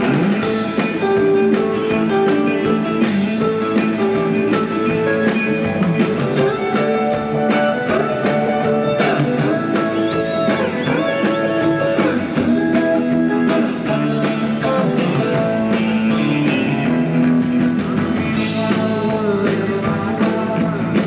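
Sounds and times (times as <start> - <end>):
electric guitar solo: 0.0 - 21.0
rock band playing: 0.0 - 21.0.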